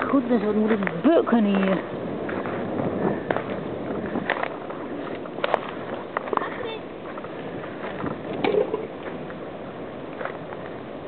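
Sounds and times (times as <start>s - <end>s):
footsteps crunching through dry leaves: 0.1s - 8.3s.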